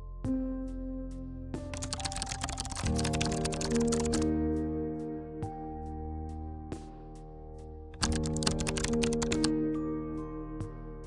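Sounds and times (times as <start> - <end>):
background music sustained notes: 0.0 - 11.0
rapid keyboard typing: 1.8 - 4.2, 8.0 - 9.5.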